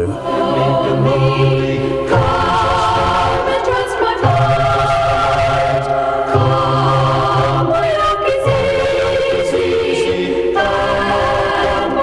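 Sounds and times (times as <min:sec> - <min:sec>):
choir singing a cappella: 0:00.0 - 0:12.0.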